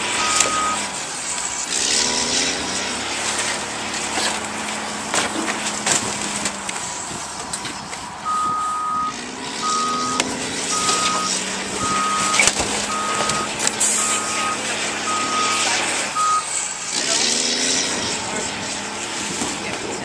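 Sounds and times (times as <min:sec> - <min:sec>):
diesel engine running: 0:00.0 - 0:20.0
reversing alarm beeps: 0:00.1 - 0:00.9, 0:08.2 - 0:16.6
trash clattering onto pile: 0:04.1 - 0:06.6.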